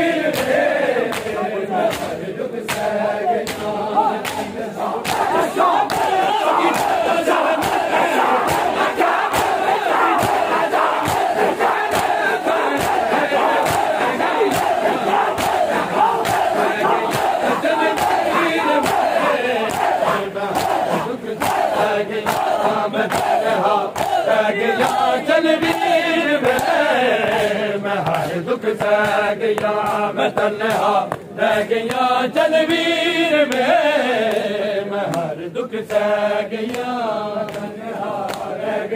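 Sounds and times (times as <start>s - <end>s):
crowd of men chanting: 0.0s - 38.9s
hands slapping chests: 0.3s - 25.0s, 25.6s - 32.0s, 35.9s - 38.5s.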